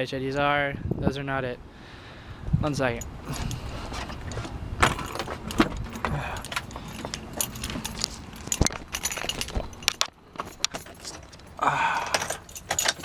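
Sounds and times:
keys jangling: 3.0 - 13.0
sharp clicks and knocks: 3.4 - 11.5.

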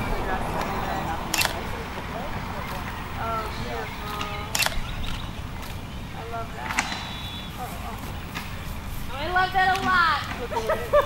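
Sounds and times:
camera shutter clack: 1.3 - 1.7, 4.5 - 5.8.

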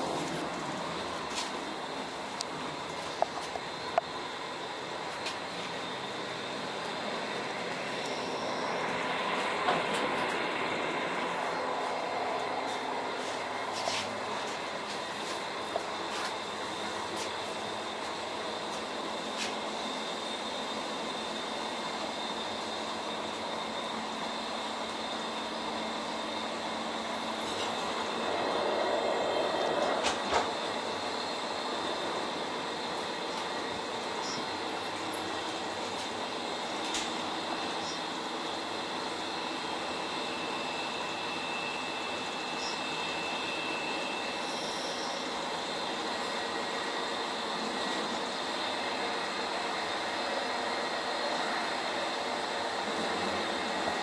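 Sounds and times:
train cabin rumble and hiss: 0.0 - 54.0.

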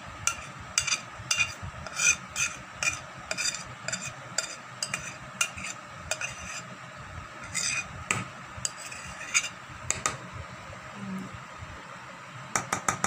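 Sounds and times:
spoon scraping batter from bowl: 0.3 - 6.7, 7.4 - 7.9, 8.6 - 9.6.

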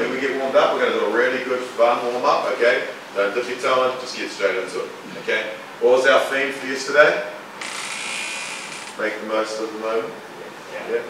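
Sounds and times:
steady high hiss: 2.8 - 10.0.

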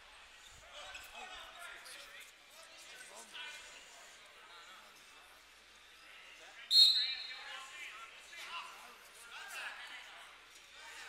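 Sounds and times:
murmur of voices: 0.0 - 11.0
referee's whistle blast: 6.7 - 7.3.

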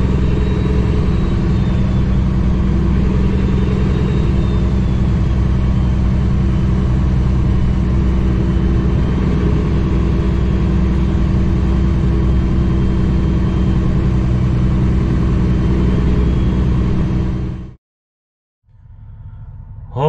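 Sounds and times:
road noise: 0.0 - 17.7
diesel truck engine droning: 0.0 - 17.8, 18.7 - 20.0.

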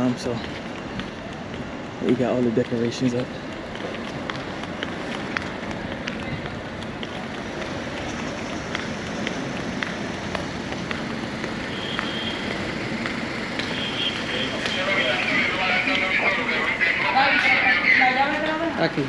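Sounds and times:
footsteps on pavement: 0.0 - 19.0.

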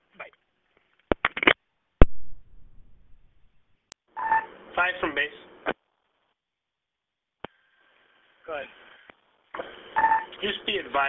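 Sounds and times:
brief low noise: 2.0 - 3.6.

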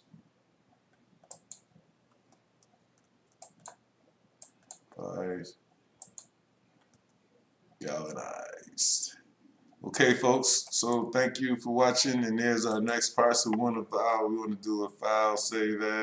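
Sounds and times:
computer mouse clicks: 0.9 - 3.8, 4.4 - 5.1, 6.0 - 7.2.

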